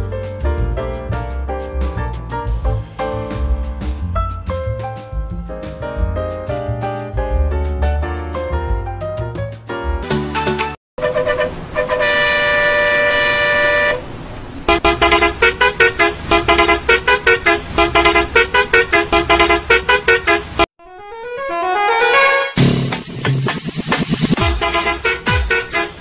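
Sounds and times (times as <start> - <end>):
two-tone vehicle horn blast: 11.0 - 14.1, 14.7 - 20.7, 24.4 - 26.0
fast electronic music: 22.6 - 26.0.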